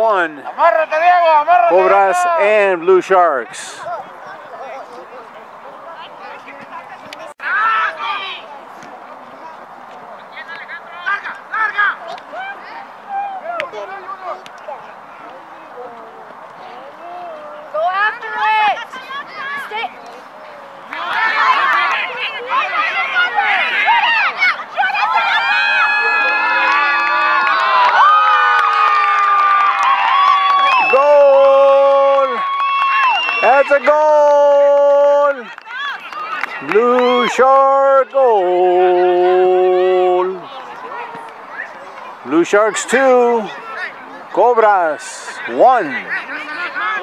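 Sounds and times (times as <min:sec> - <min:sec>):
people shouting: 0:00.7 - 0:02.8, 0:20.9 - 0:41.8
low background murmur: 0:38.0 - 0:47.0.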